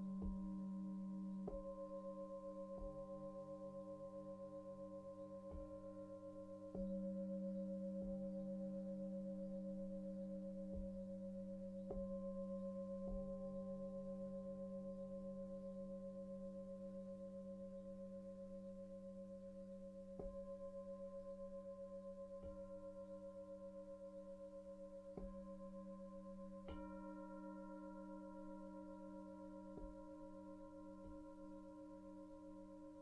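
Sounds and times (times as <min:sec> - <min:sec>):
singing bowls ringing: 0:00.0 - 0:33.0.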